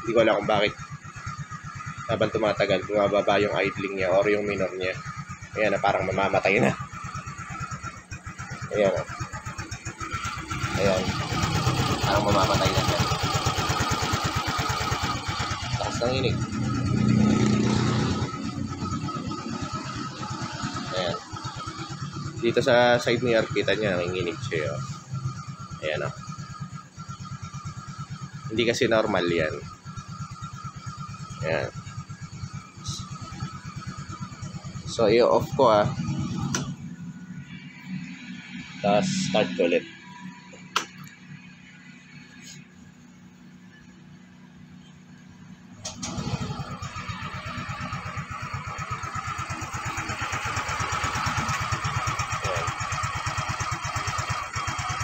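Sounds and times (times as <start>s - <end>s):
low hum: 0.0s - 52.7s
scooter engine idling unevenly: 0.0s - 55.0s.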